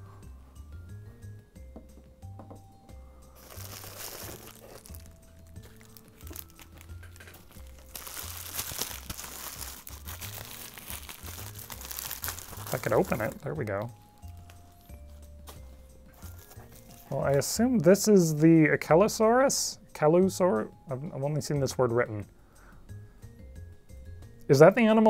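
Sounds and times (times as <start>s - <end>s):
bubble wrap crinkling: 3.3s - 17.9s.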